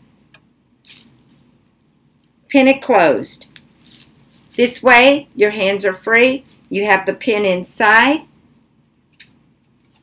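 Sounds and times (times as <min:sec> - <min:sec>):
plastic crinkling rustle: 0:00.8 - 0:02.3, 0:03.5 - 0:04.7.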